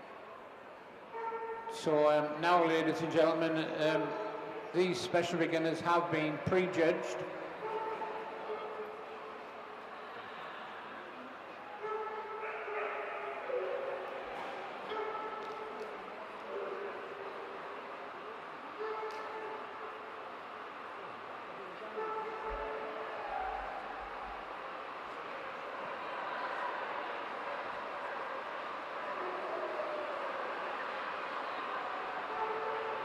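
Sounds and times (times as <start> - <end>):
murmur of large indoor hall: 0.0 - 33.0.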